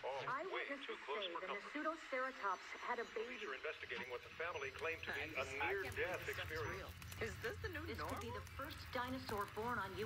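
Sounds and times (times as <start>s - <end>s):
indistinct film dialogue voices: 0.0s - 10.0s.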